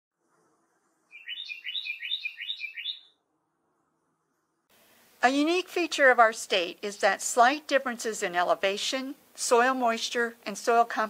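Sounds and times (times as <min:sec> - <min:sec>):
songbird singing: 0:01.1 - 0:03.2.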